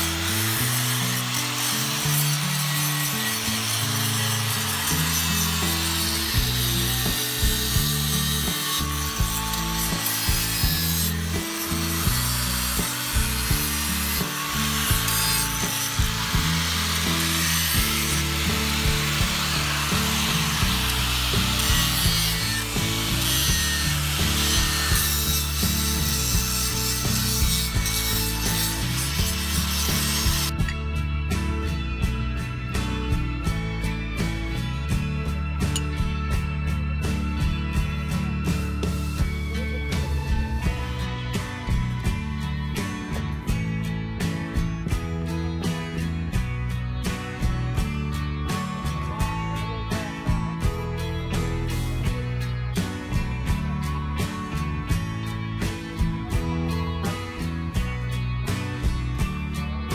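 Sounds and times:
angle grinder grinding stone: 0.0 - 30.8
background music: 0.0 - 59.9.

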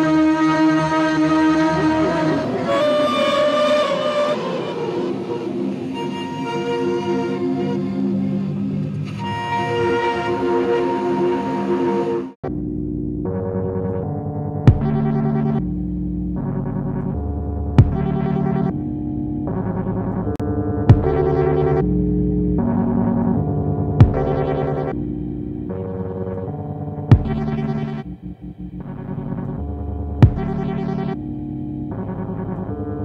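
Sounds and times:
synthesizer chord: 0.0 - 33.0
synthesizer held tones: 13.2 - 15.7, 20.9 - 31.2.

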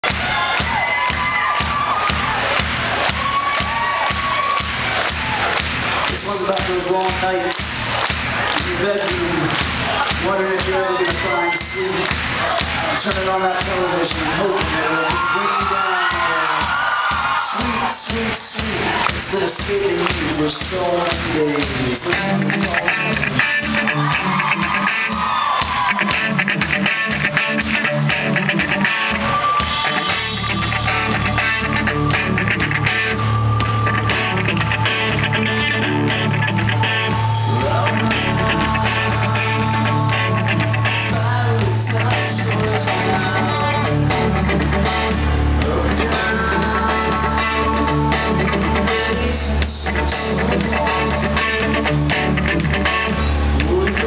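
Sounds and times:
crowd cheering and shouting: 0.0 - 54.0
live rock band playing: 0.0 - 54.0.

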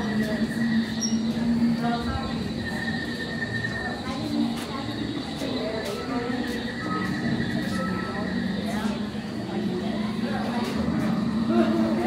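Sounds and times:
faint scattered voices: 0.0 - 12.0
steady even hum: 0.0 - 12.0.

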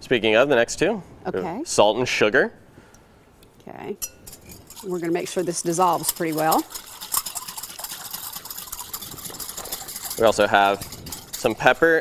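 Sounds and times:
whisk stirring in glass bowl: 4.2 - 12.0
salt and sugar pouring: 4.4 - 12.0.

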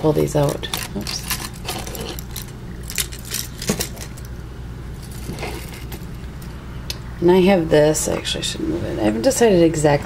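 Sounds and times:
metal earrings clinking: 0.4 - 4.3.

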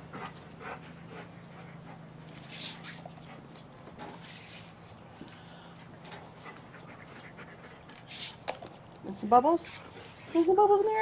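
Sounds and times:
dog panting: 0.0 - 8.8, 9.4 - 10.9
steady low hum: 0.0 - 11.0.

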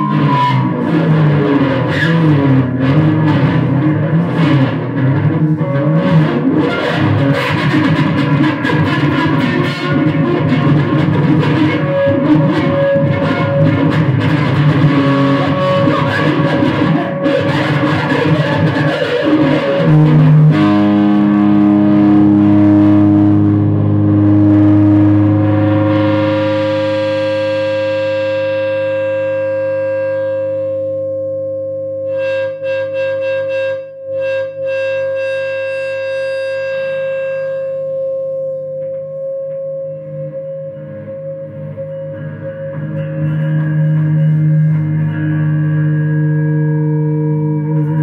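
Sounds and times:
electric guitar feedback drone: 0.0 - 48.0.

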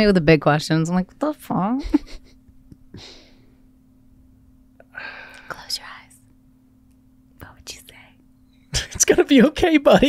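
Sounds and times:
faint electrical hum: 0.0 - 10.0
breathy exhale: 4.8 - 5.5.

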